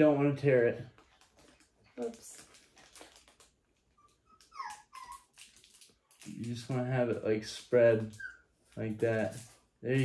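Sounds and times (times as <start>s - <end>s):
puppy whimpering: 3.9s - 5.5s, 8.0s - 8.6s.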